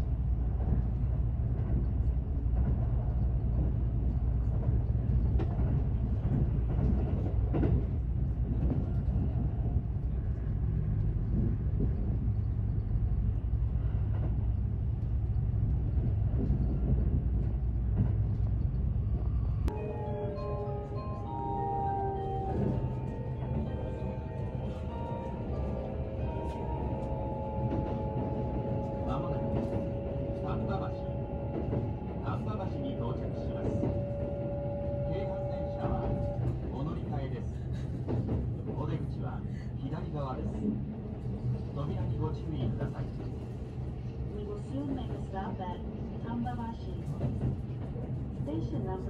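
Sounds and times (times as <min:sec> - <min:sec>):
train running rumble: 0:00.0 - 0:49.0
automated announcement over speakers: 0:19.7 - 0:37.5.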